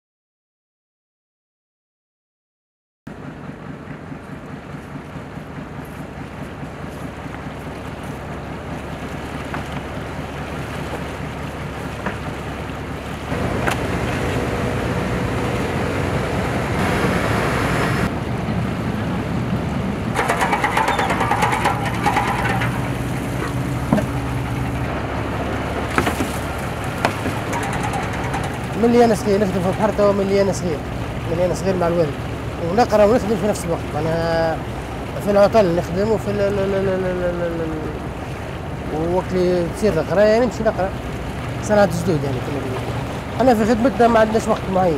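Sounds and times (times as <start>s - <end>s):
boat engine running: 3.1s - 44.9s
water noise: 3.1s - 44.9s.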